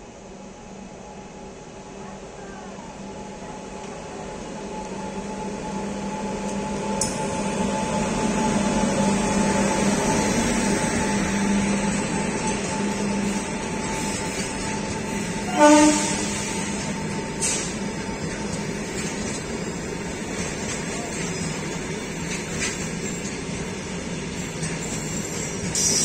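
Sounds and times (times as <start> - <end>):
electric locomotive humming: 0.0 - 26.0.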